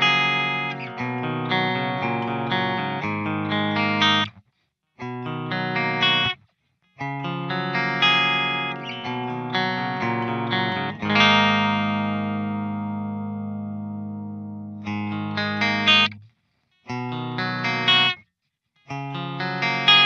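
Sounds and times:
clean electric guitar chords: 0.0s - 4.3s, 5.0s - 6.4s, 7.0s - 16.2s, 18.9s - 20.0s.

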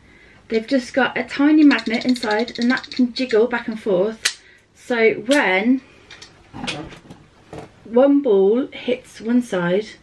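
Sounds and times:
plastic toy pieces clicking: 1.6s - 3.5s.

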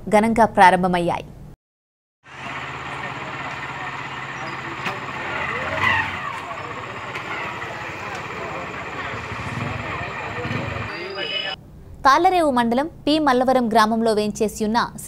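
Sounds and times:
din of mixed voices: 2.4s - 11.6s.

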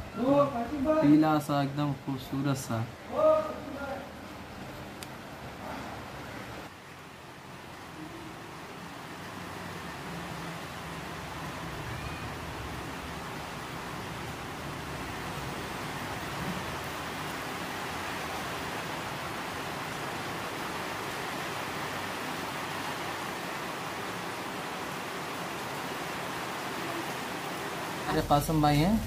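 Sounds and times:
steady background hiss: 0.0s - 29.0s.

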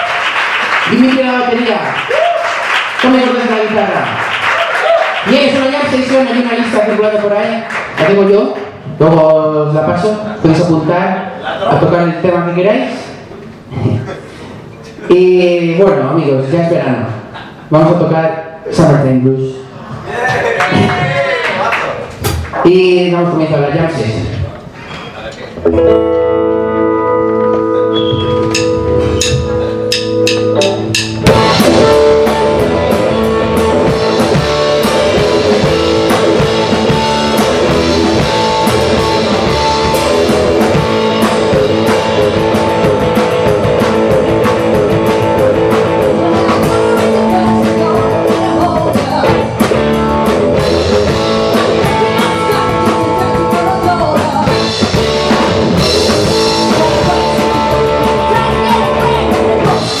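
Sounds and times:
live rock band playing: 25.6s - 60.0s
ringing guitar notes: 25.7s - 46.9s
woman singing: 51.5s - 54.6s, 56.5s - 59.8s.

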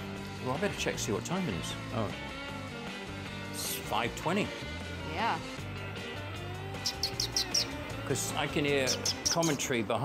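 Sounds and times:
faint background music: 0.0s - 10.0s
bird chirps: 6.7s - 8.0s, 8.7s - 9.7s.

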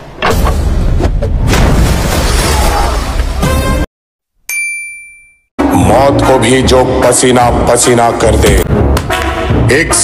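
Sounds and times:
film soundtrack music and effects: 0.0s - 3.9s, 5.6s - 10.0s
bright ding: 4.5s - 5.5s.

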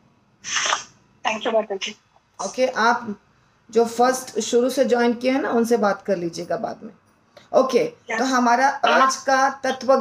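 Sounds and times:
person hissing: 0.5s - 0.9s
person speaking: 0.5s - 10.0s.

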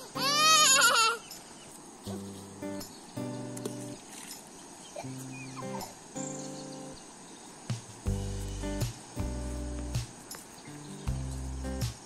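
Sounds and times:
animal bleating call: 0.0s - 1.2s
background music notes: 2.0s - 4.1s, 7.7s - 12.0s.

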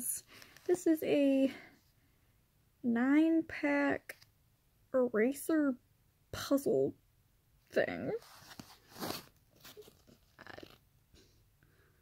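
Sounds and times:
plastic wrapper crinkling: 8.2s - 10.8s.

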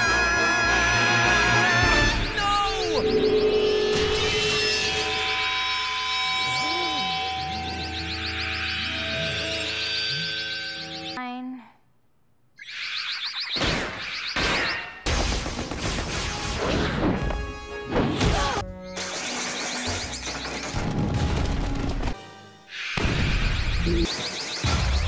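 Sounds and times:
swooping warbling sound effects: 12.6s - 15.0s.

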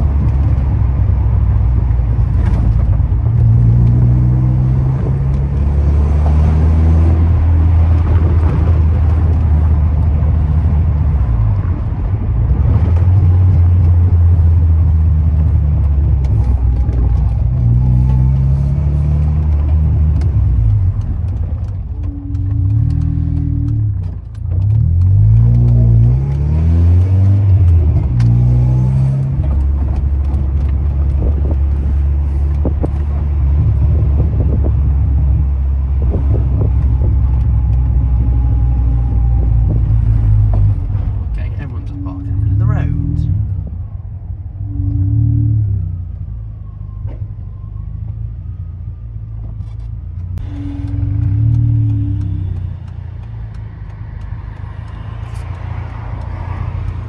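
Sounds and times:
car engine: 0.0s - 57.0s
road noise: 0.0s - 57.0s.

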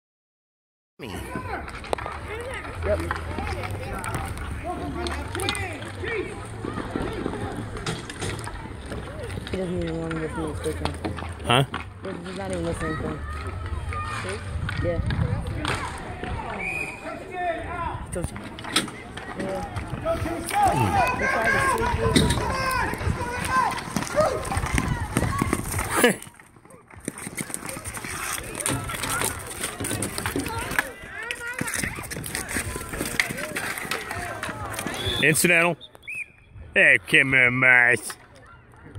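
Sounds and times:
voices calling and shouting: 1.0s - 38.9s
sticks clacking and scraping: 1.6s - 12.8s, 18.2s - 35.6s
people shouting: 19.1s - 26.1s.

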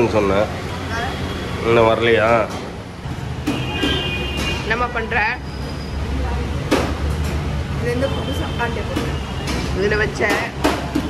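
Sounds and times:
low rumble of eatery background: 0.0s - 11.0s.

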